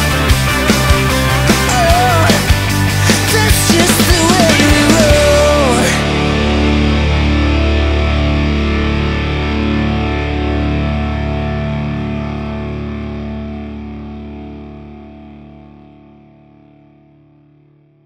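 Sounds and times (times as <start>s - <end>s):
distorted electric guitar chord: 0.0s - 18.0s.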